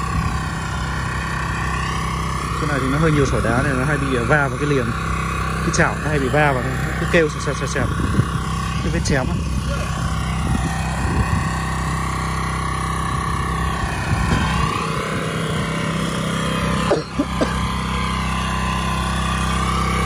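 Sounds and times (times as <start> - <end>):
machine engine running: 0.0 - 20.0.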